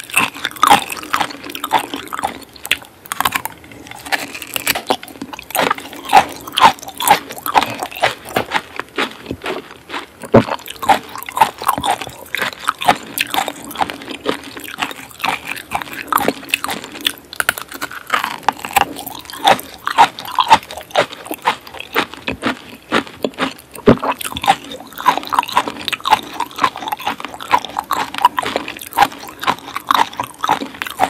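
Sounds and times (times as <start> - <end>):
wet chewing: 0.0 - 31.0.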